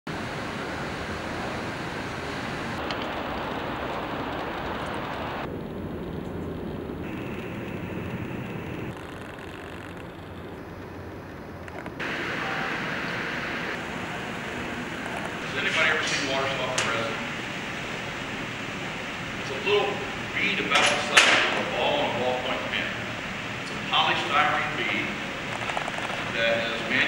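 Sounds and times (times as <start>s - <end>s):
background rushing noise: 0.1s - 27.0s.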